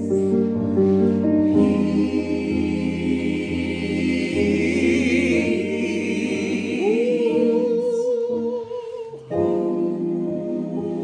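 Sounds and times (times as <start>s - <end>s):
gospel choir singing: 0.0s - 11.0s
keyboard accompaniment: 0.0s - 11.0s.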